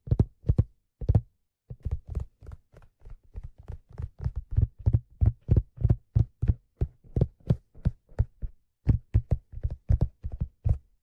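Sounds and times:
fingers tapping on a hat: 0.0s - 11.0s.

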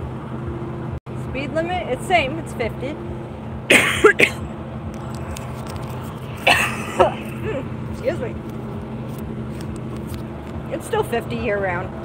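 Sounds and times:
truck diesel engine droning: 0.0s - 12.0s
person clearing throat: 3.7s - 4.4s, 6.4s - 7.6s.

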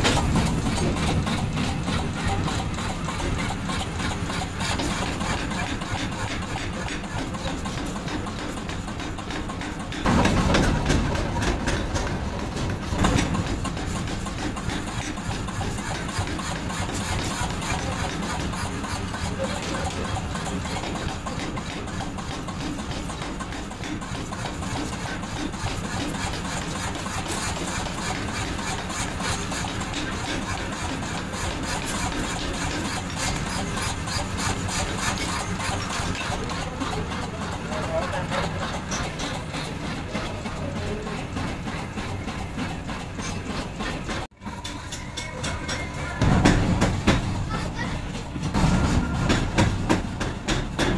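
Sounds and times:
power hammer pounding: 0.0s - 50.9s.

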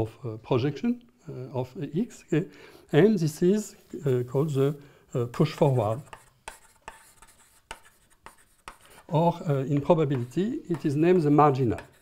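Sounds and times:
chalk scratching on blackboard: 2.9s - 12.0s
chalk tapping on blackboard: 5.3s - 12.0s.

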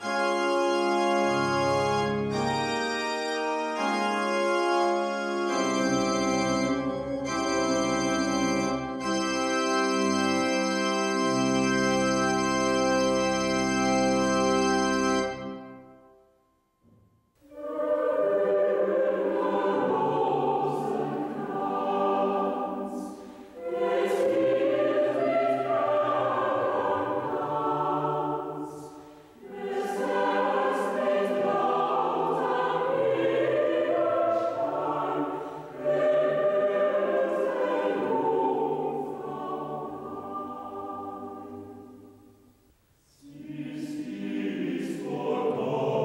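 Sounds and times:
choir singing: 4.9s - 9.2s, 17.4s - 42.4s, 43.0s - 46.0s.

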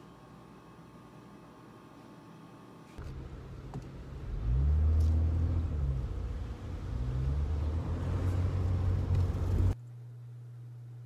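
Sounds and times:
car engine and road rumble: 3.0s - 9.8s.

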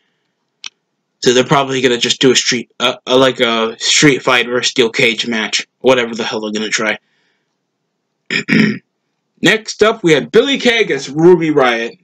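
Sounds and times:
man clearing his throat: 8.3s - 8.8s.

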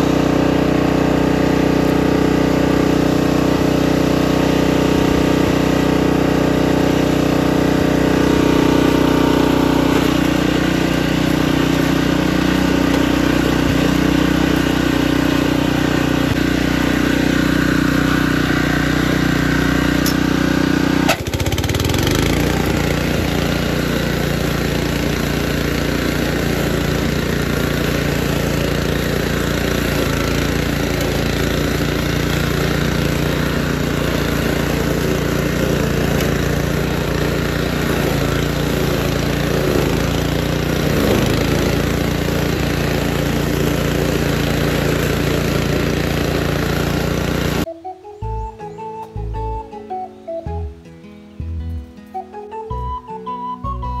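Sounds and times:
lawn mower engine running: 0.0s - 54.0s.

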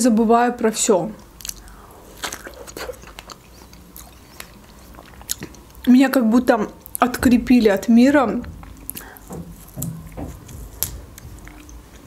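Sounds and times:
person chewing strawberry: 1.2s - 5.9s, 8.6s - 9.8s, 10.4s - 12.0s.

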